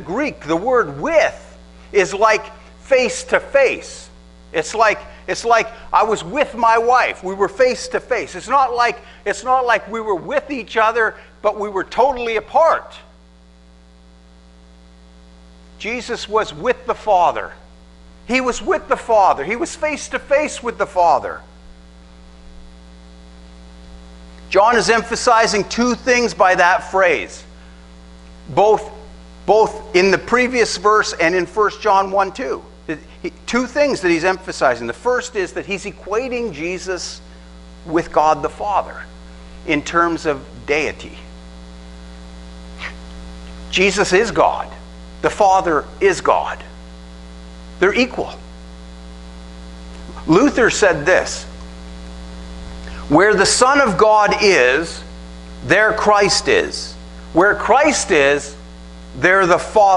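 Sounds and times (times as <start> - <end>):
electrical mains hum: 0.0 - 59.9
faint hiss: 0.0 - 59.9.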